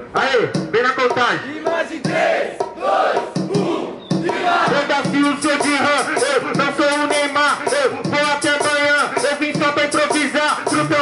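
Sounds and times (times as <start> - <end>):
man shouting through microphone: 0.1 - 2.3, 4.3 - 11.0
crowd: 1.4 - 6.4.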